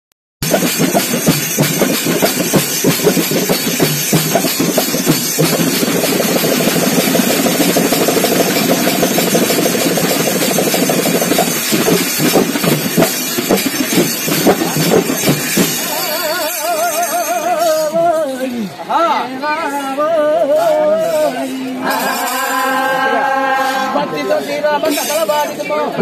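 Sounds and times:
frame drums beaten fast: 0:00.4 - 0:17.9
metal hand cymbals: 0:00.4 - 0:18.6, 0:19.6 - 0:25.8.

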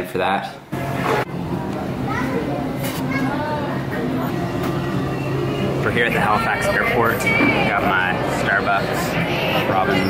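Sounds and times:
steady low hum: 0:00.6 - 0:10.0
chatter of many voices: 0:00.7 - 0:10.0.

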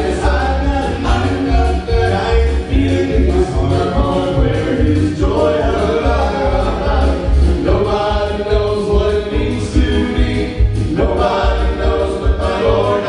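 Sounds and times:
instrumental accompaniment with bass: 0:00.0 - 0:13.0
male vocal group singing harmony: 0:00.0 - 0:13.0.

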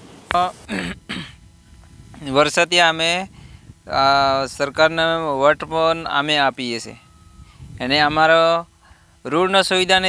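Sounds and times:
person clearing throat: 0:00.4 - 0:01.4.

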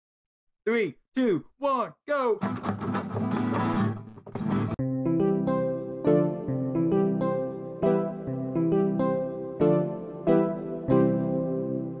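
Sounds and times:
acoustic guitar strumming: 0:02.4 - 0:04.8.

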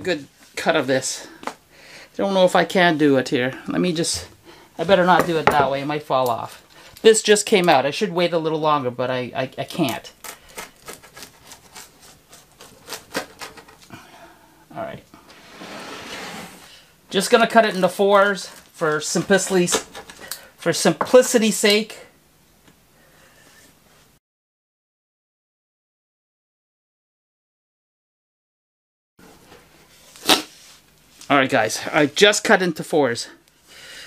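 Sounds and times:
blade crunching through pizza crust: 0:10.2 - 0:13.6.

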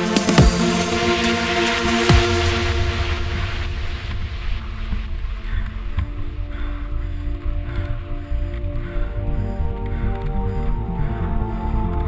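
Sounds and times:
faint electronic music: 0:00.0 - 0:12.0.

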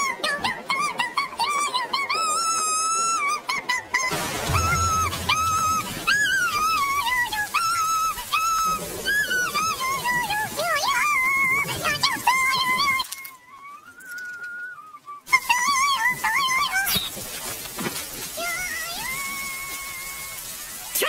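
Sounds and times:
high-pitched wailing voice: 0:15.3 - 0:17.0, 0:18.4 - 0:21.0.

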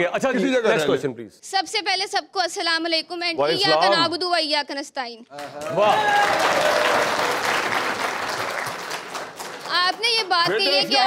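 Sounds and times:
person speaking: 0:03.2 - 0:04.4, 0:09.7 - 0:11.0
audience applauding: 0:05.4 - 0:11.0.

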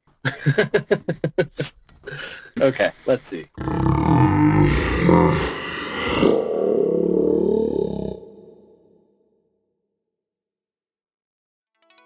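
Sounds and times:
man roaring: 0:03.6 - 0:08.8.

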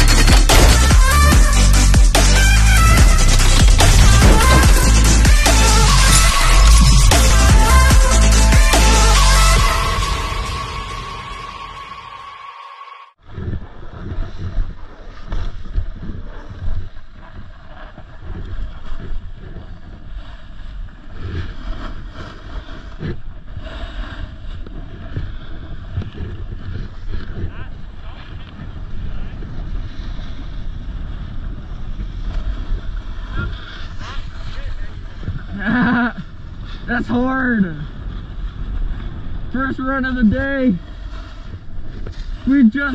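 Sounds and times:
wind buffeting microphone: 0:13.2 - 0:42.9
snowboard carving over snow: 0:13.4 - 0:42.9.

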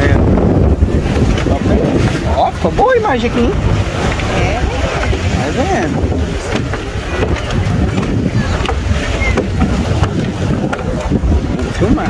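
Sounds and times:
boat engine: 0:00.0 - 0:12.0
water beneath boat: 0:00.0 - 0:12.0
wind rumble on microphone: 0:00.0 - 0:12.0.

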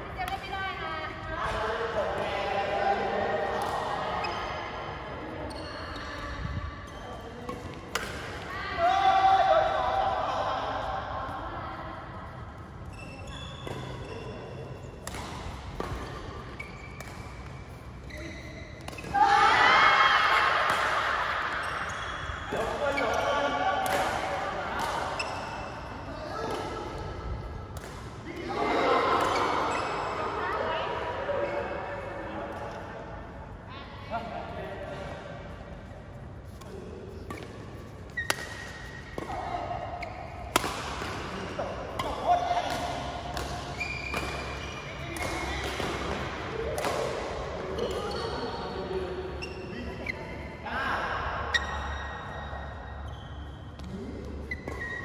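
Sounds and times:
racket hitting shuttlecock: 0:07.5 - 0:08.5, 0:15.0 - 0:18.2, 0:18.8 - 0:19.6, 0:20.2 - 0:21.6, 0:23.8 - 0:25.6, 0:27.7 - 0:28.5, 0:36.5 - 0:48.1.

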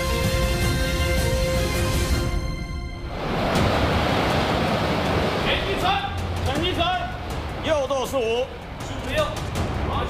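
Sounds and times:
sea water and wind rushing: 0:00.0 - 0:10.0.

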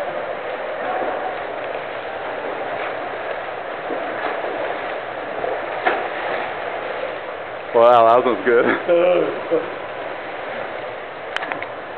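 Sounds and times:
swimmer splashing water: 0:00.0 - 0:11.9.

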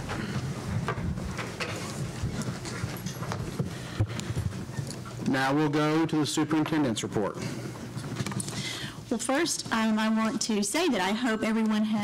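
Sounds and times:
people sitting down in chairs: 0:00.0 - 0:05.2.

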